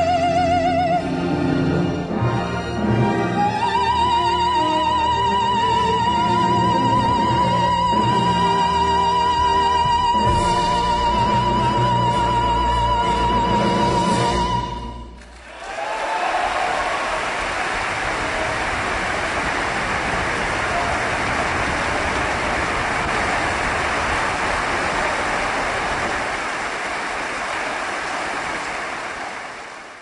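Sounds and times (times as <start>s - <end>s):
audience applause: 15.2s - 30.0s.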